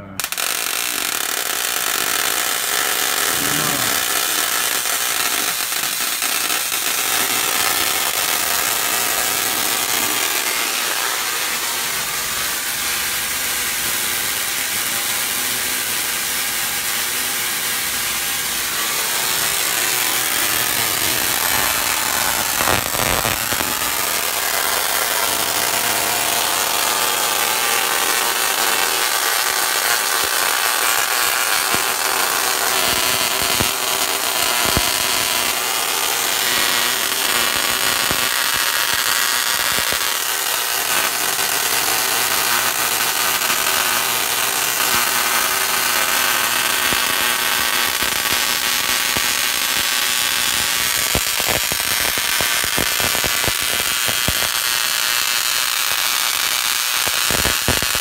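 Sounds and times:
tesla coil spark buzzing: 0.0 - 58.0.

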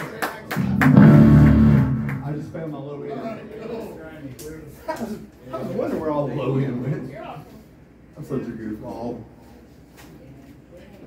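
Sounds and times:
electric guitar chord ringing: 0.6 - 2.3.

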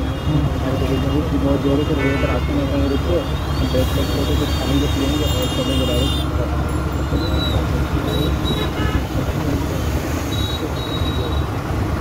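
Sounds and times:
engine and wind rumble: 0.0 - 12.0
street traffic: 0.0 - 12.0.

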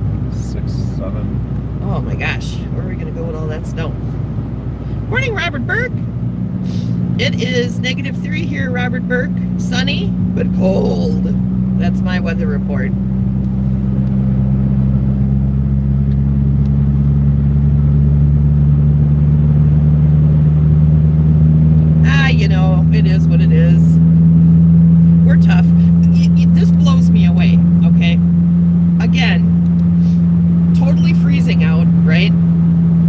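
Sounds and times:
car engine and road noise: 0.0 - 33.0.

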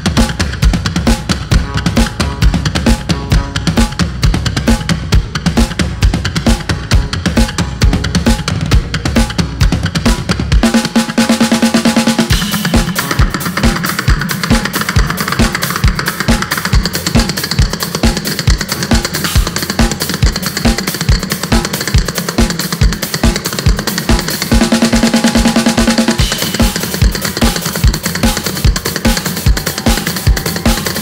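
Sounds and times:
drum kit beat: 0.0 - 31.0.

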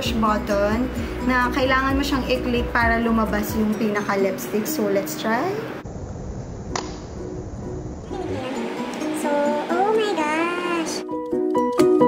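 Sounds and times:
faint background music: 0.0 - 5.8, 7.2 - 12.0.

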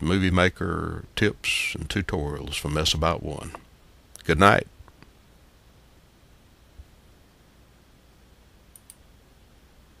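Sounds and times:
faint low hum: 0.0 - 10.0
computer mouse clicks: 8.7 - 9.0.

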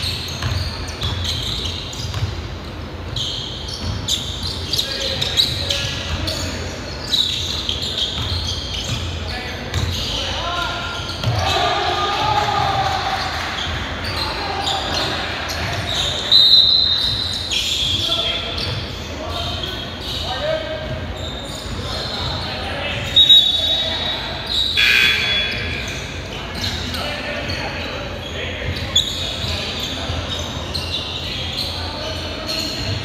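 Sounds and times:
sneakers squeaking on court: 0.0 - 11.8, 12.7 - 33.0
basketball bouncing: 0.4 - 2.5
distant voices: 3.2 - 33.0.

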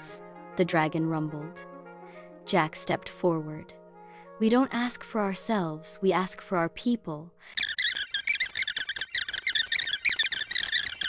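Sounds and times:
sped-up chirping narration: 7.5 - 11.0.

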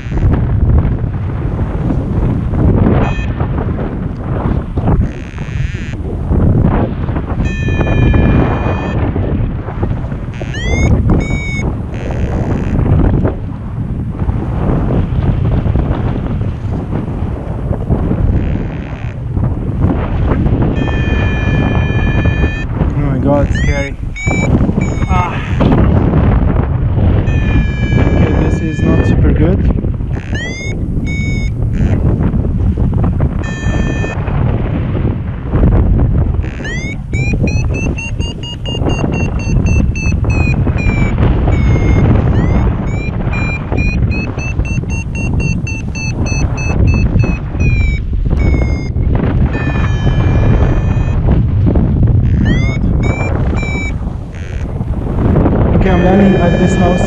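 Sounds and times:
variometer beeps and chirps: 0.0 - 0.4, 2.9 - 3.4, 5.0 - 6.1, 7.4 - 9.0, 10.3 - 12.8, 20.8 - 25.7, 27.2 - 29.3, 30.1 - 32.2, 33.4 - 34.2, 36.4 - 51.2, 52.2 - 54.8, 55.8 - 57.0
wind rushing over microphone: 0.0 - 57.0.

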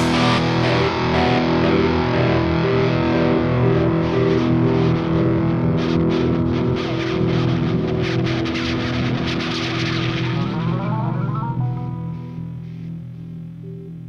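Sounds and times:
distorted electric guitar ringing: 0.0 - 14.0.

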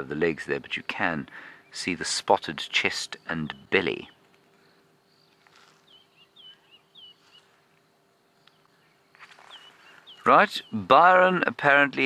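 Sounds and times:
faint bird chirps: 0.0 - 11.3
faint steady hum: 0.0 - 12.0.

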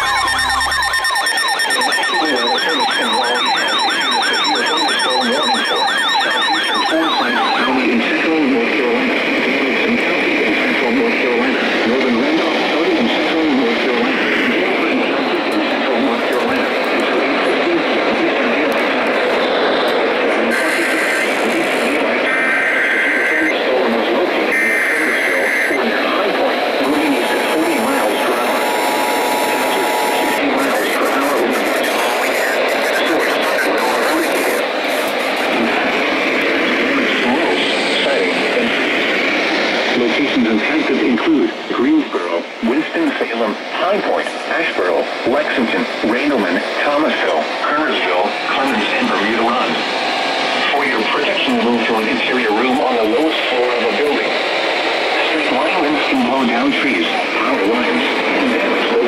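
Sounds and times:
warbling siren-like alert tone: 0.0 - 8.0
alert header data bursts: 0.0 - 8.1
steady attention tone: 0.0 - 8.3
overlapping broadcast audio: 0.0 - 59.0.

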